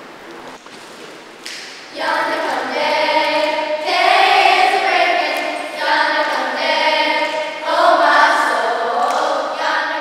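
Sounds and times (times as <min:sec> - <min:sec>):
children's choir singing: 0:01.9 - 0:10.0.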